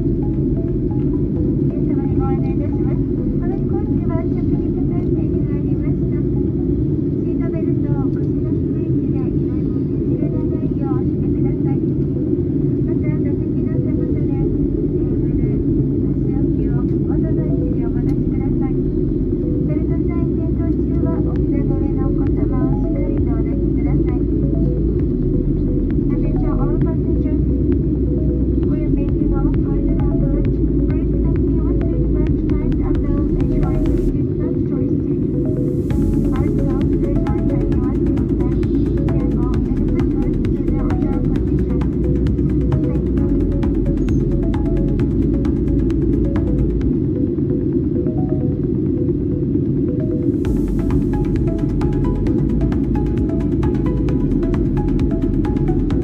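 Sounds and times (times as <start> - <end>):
jet airliner cabin rumble: 0.0 - 56.0.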